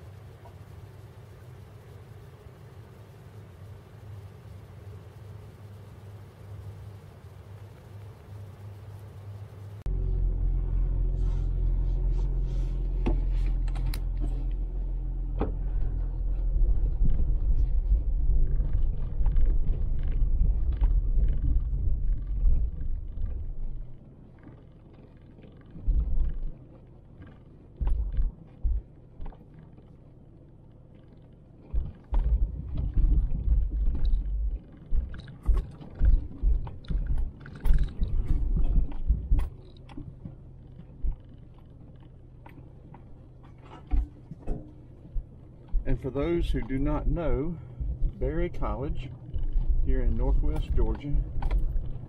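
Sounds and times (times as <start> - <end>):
vehicle rumble inside cab: 0.0 - 52.0
low thumps on rough road: 9.9 - 52.0.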